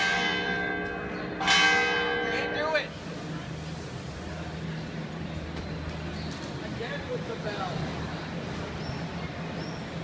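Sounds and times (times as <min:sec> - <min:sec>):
church bell tolling: 0:00.0 - 0:02.9.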